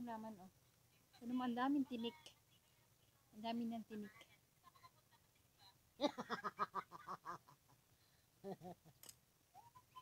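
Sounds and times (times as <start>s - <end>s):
woman laughing: 6.0s - 7.8s, 8.4s - 9.0s.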